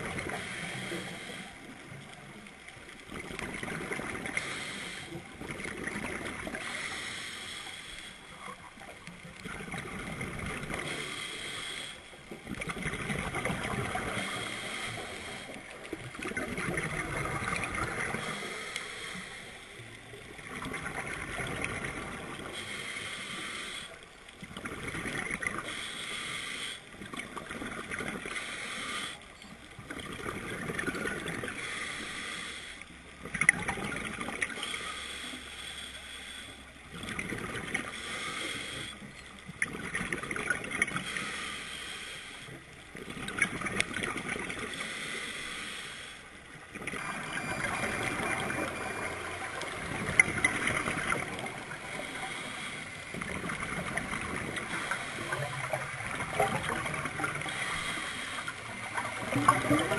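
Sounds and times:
regulator inhaled hiss: 0.3s - 2.0s, 4.2s - 5.3s, 6.5s - 8.6s, 10.8s - 12.2s, 13.6s - 15.8s, 17.5s - 19.9s, 22.4s - 24.0s, 25.6s - 26.9s, 28.3s - 29.2s, 31.5s - 33.0s, 34.5s - 36.7s, 37.7s - 39.1s, 41.0s - 42.6s, 44.6s - 46.6s, 51.0s - 53.6s, 54.6s - 56.7s, 57.3s - 59.2s
exhaled bubbles: 5.3s - 6.6s, 15.9s - 18.4s, 24.5s - 25.7s, 29.8s - 31.5s, 33.2s - 34.6s, 46.7s - 52.4s, 53.1s - 59.9s.

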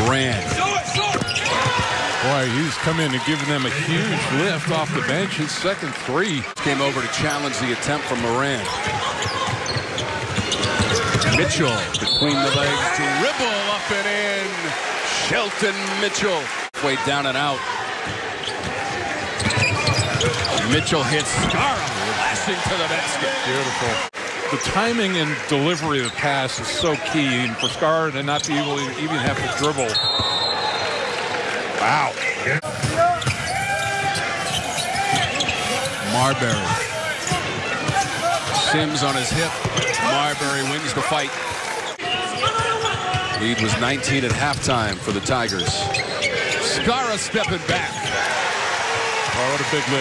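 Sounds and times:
arena crowd noise: 0.0s - 50.0s.

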